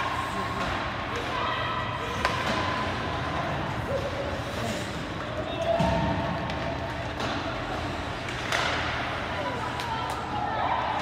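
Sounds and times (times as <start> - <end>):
spectators' voices: 0.0 - 11.0
hockey sticks and puck knocking: 5.1 - 10.3.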